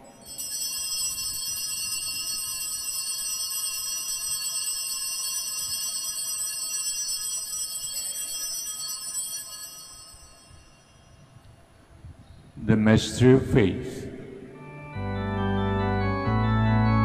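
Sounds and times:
altar bells ringing: 0.0s - 11.3s.

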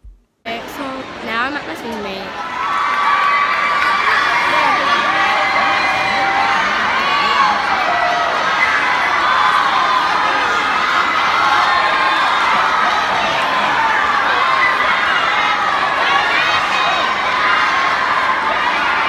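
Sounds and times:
crowd cheering and shouting: 1.0s - 19.0s.

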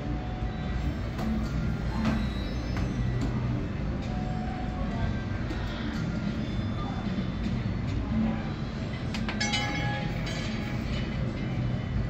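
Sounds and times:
casino room noise: 0.0s - 12.0s
high chiming tones: 9.4s - 10.4s.

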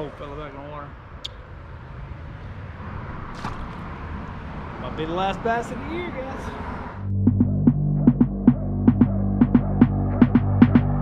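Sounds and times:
low electronic drone: 7.0s - 11.0s
quick beat of sharp clicks: 7.3s - 11.0s.

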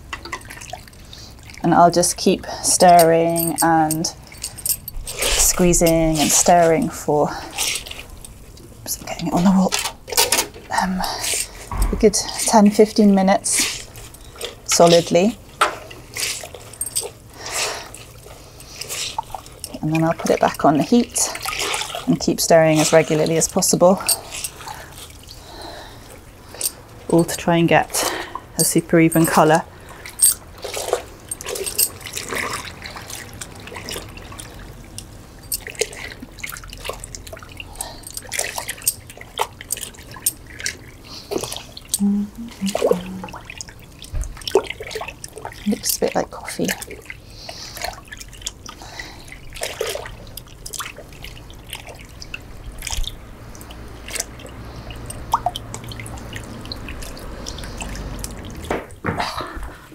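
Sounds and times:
cloth sloshing in liquid: 0.3s - 1.7s, 2.5s - 27.1s, 29.2s - 41.9s, 42.5s - 59.0s.

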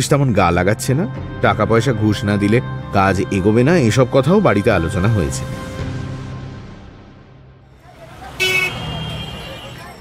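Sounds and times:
low traffic rumble: 7.7s - 10.0s
car horn honk: 8.2s - 10.0s.

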